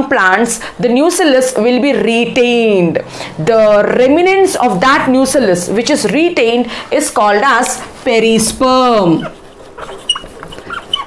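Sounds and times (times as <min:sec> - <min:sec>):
marker squeaking on whiteboard: 0:08.4 - 0:11.0.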